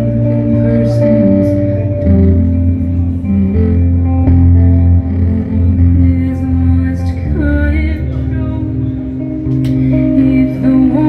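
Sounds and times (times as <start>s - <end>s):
heavy sustained bass notes: 0.0s - 11.0s
held guitar and synth tones: 0.0s - 11.0s
person singing: 0.0s - 11.0s.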